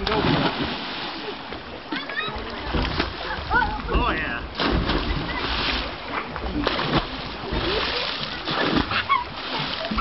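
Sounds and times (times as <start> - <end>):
water splashing and churning: 0.0 - 10.0.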